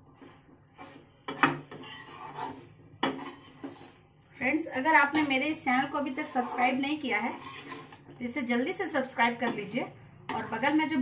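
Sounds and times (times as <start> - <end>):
metal spatula scraping a pan: 0.0 - 4.1, 4.8 - 11.0.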